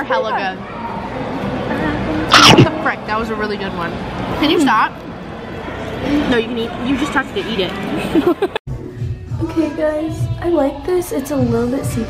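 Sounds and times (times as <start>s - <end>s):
person sneezing loudly: 2.3s - 2.7s.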